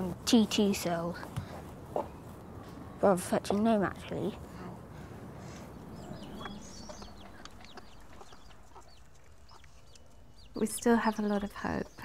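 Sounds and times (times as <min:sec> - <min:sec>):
chickens chirping: 0:01.3 - 0:03.6, 0:04.4 - 0:12.0.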